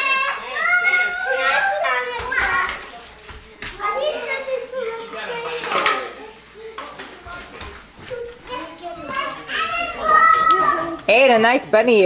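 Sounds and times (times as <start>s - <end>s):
girls chattering and calling out: 0.0s - 12.0s.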